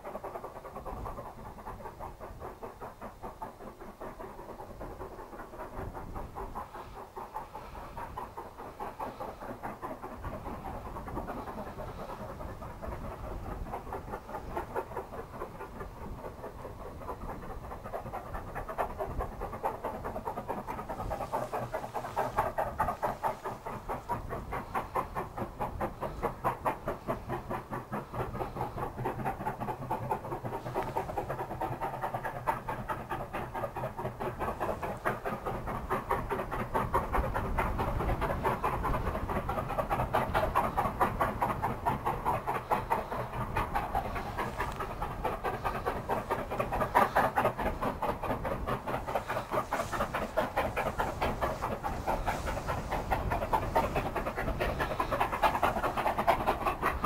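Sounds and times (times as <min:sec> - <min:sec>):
steam locomotive exhaust beats: 0:00.0 - 0:57.0.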